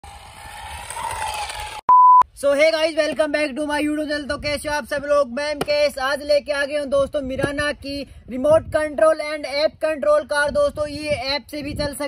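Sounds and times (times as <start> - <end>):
test-tone beep: 1.9 - 2.2.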